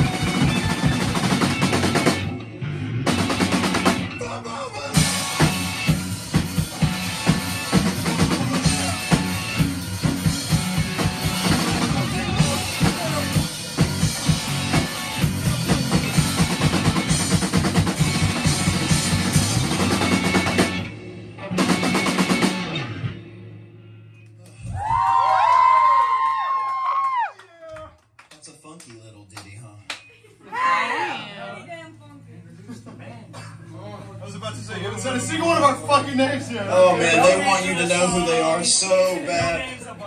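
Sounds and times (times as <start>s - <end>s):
live rock band playing: 0.0s - 24.2s.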